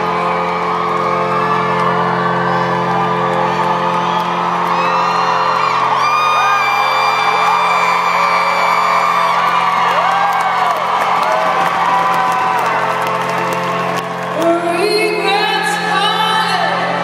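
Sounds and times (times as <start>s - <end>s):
audience whooping and screaming: 0.0s - 14.4s
long high scream: 4.3s - 12.7s.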